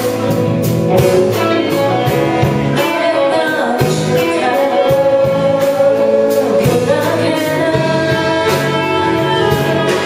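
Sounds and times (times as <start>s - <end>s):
live rock band playing: 0.0s - 10.0s
woman singing lead vocal: 1.3s - 10.0s.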